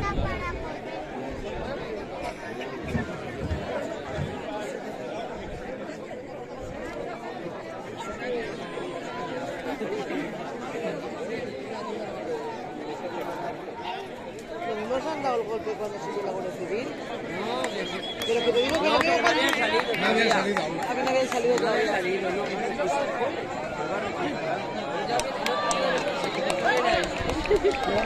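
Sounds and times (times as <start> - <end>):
crowd chattering: 0.0 - 28.0.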